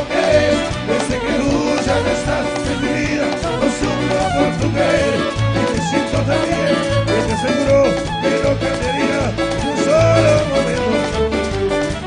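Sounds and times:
live band music over loudspeakers: 0:00.0 - 0:12.0.

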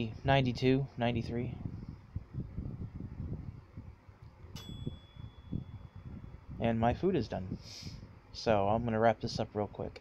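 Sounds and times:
appliance timer beep: 0:04.6 - 0:06.4.

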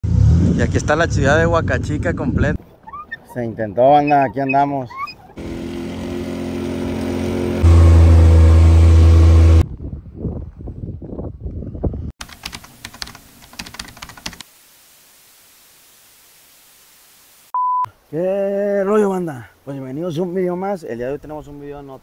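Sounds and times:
quad bike engine running: 0:05.4 - 0:09.6
sharp clicks: 0:12.2 - 0:14.5
faint hiss: 0:12.4 - 0:22.0
short steady beep: 0:17.6 - 0:17.9.

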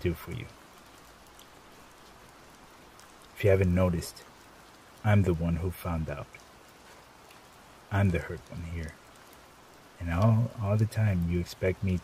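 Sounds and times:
rain hiss: 0:00.0 - 0:12.0.

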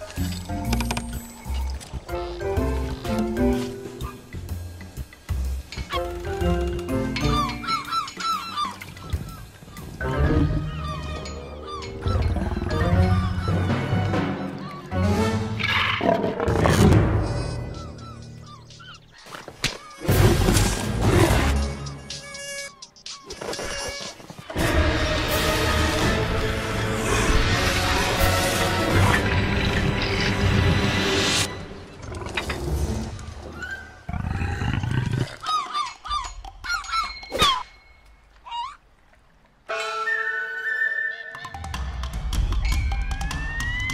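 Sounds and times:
background music: 0:00.0 - 0:19.2, 0:19.9 - 0:35.0, 0:39.6 - 0:43.9
cartoon seagulls squawking: 0:07.2 - 0:15.2, 0:17.2 - 0:20.2, 0:39.7 - 0:41.8.

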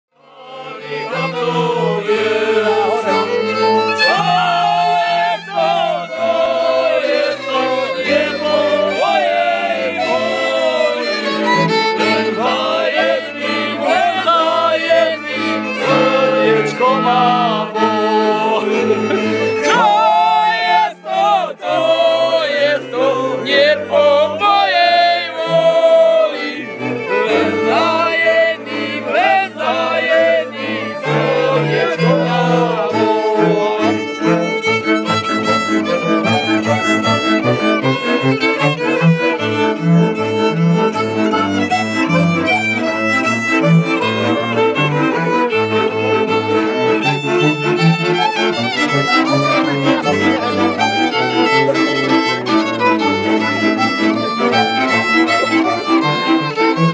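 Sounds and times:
men singing: 0:00.2 - 0:34.6, 0:35.2 - 0:39.0, 0:46.2 - 0:56.9
fiddles playing: 0:00.2 - 0:56.9
button accordion: 0:00.4 - 0:56.9
bowed bass line: 0:00.8 - 0:56.9.

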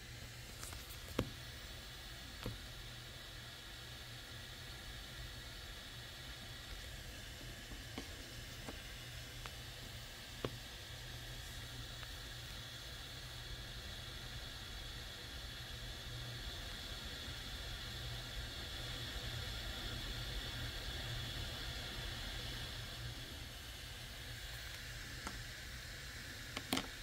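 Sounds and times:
fan hiss: 0:00.0 - 0:27.0.

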